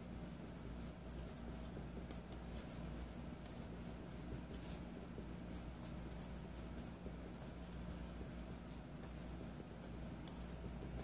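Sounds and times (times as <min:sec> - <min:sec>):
low room hum: 0:00.0 - 0:11.0
marker scratching on paper: 0:00.2 - 0:11.0.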